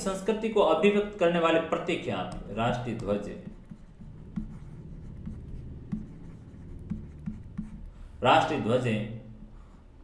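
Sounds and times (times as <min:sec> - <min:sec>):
steady low hum: 0:01.0 - 0:10.0
stylus strokes on tablet: 0:02.3 - 0:08.5.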